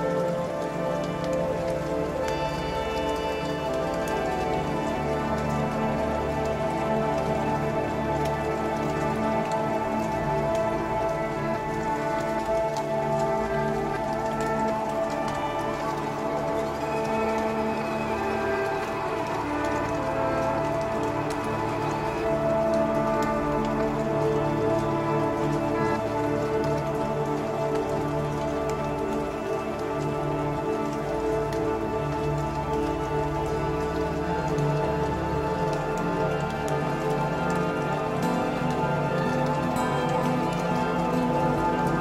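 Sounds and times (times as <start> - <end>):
steady hiss with crackles: 0.0 - 42.0.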